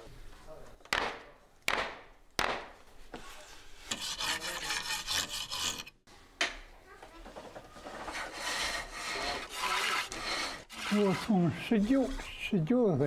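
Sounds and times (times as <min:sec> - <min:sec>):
lathe tool scraping wood: 0:03.8 - 0:06.0, 0:07.8 - 0:12.6.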